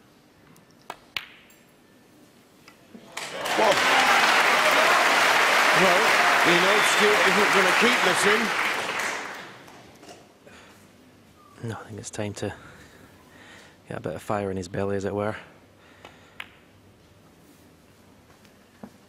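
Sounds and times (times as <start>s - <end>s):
crowd applause: 3.1s - 9.8s.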